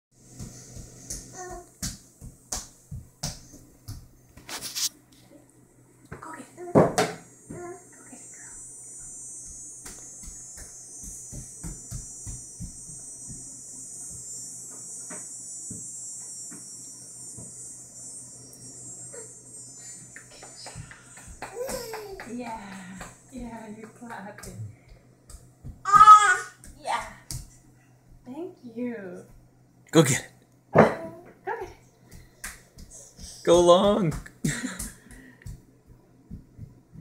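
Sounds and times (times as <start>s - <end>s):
steady high hiss: 0.2s - 27.7s, 29.9s - 30.4s, 31.9s - 36.0s
taps and knocks on hardwood floor: 0.4s - 4.1s, 6.1s - 7.6s, 9.8s - 13.5s, 20.6s - 27.5s, 32.1s - 37.0s
child's vocal sound: 21.5s - 22.3s, 25.9s - 26.6s.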